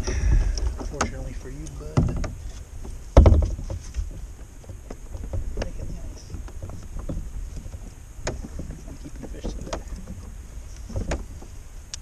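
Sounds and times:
gear knocking and clattering: 0.0 - 10.2
wind rumble on microphone: 0.0 - 12.0.

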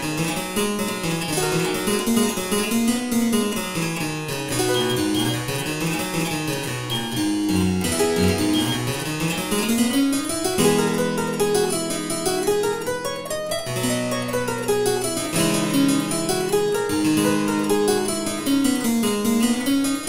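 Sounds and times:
harpsichord playing quick notes: 1.0 - 19.7.

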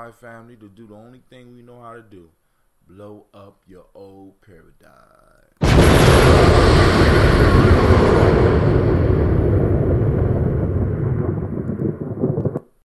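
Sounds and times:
explosion blast with long rumble: 5.6 - 12.6.

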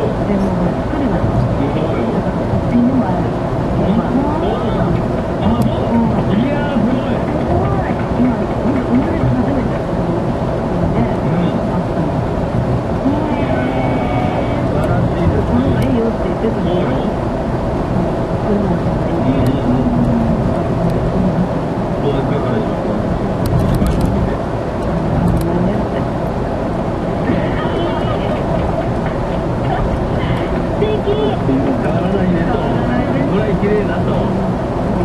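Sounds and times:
car road and engine noise: 0.0 - 35.0
indistinct talk: 0.0 - 35.0.

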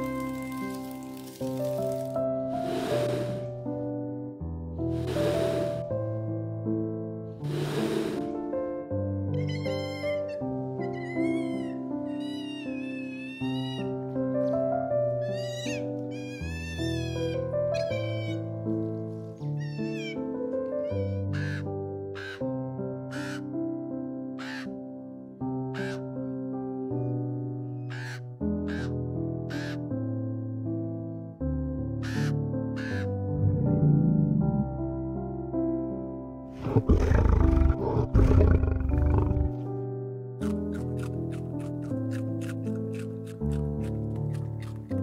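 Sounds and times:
soft piano music: 0.0 - 7.5, 8.4 - 36.6, 39.4 - 45.0
otter squeaking calls: 15.3 - 18.4
raven croaking: 32.0 - 34.8, 36.6 - 39.7.

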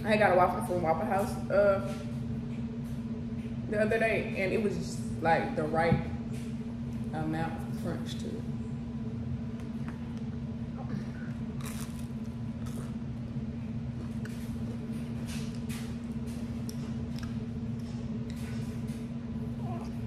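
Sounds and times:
steady low hum: 0.0 - 20.0
crisp waffle crunching: 11.5 - 13.1.

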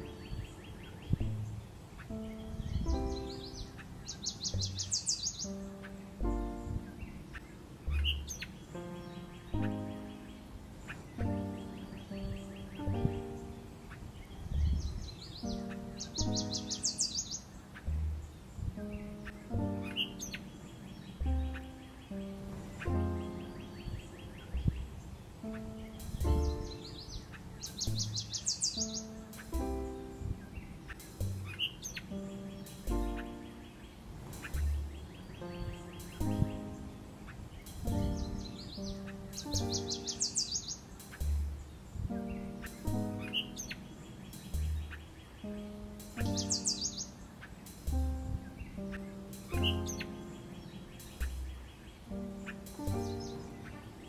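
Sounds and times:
bird chirps and rising calls: 0.0 - 54.0
instrumental music with bass notes: 0.0 - 54.0
high fast bird trill: 2.0 - 18.1, 25.4 - 54.0.

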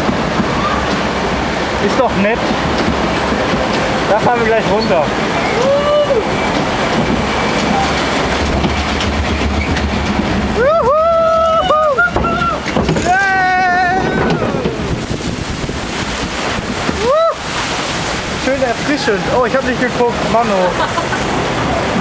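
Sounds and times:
wind and water rushing: 0.0 - 22.0
riders whooping: 5.4 - 6.5, 10.5 - 15.0, 16.8 - 17.5.

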